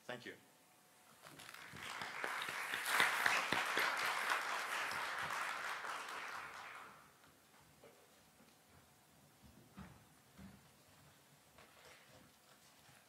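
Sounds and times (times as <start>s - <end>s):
audience applauding: 1.2s - 7.2s.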